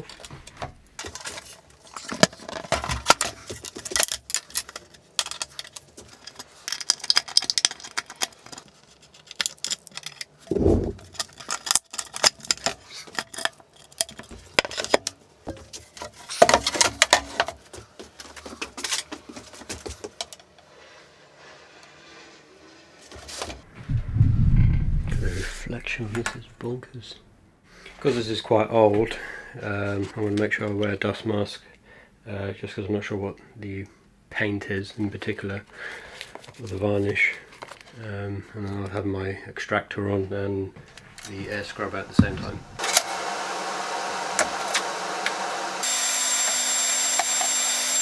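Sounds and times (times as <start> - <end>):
metal clicks and scrapes: 1.0 - 15.2.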